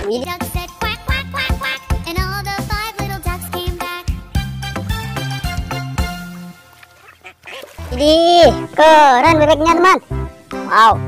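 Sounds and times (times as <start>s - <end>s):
cartoon music: 0.1s - 4.1s, 7.8s - 11.0s.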